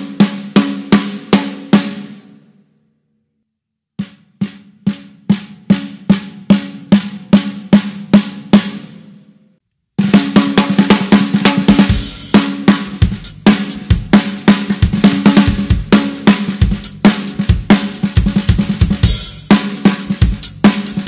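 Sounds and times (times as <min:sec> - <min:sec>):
drum kit pattern: 0:10.0 - 0:21.0.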